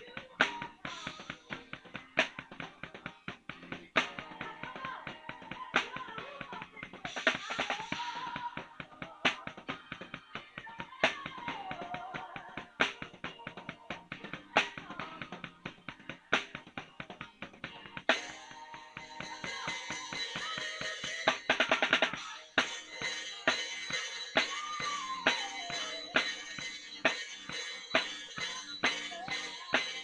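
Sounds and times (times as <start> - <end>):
steady pitched music: 7.9 - 30.0
drum strokes: 11.0 - 30.0
band instruments: 17.8 - 30.0.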